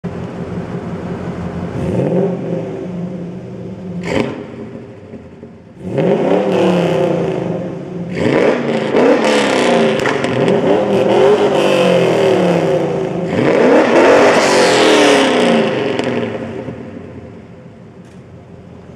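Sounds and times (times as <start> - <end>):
car engines revving: 0.0 - 18.9.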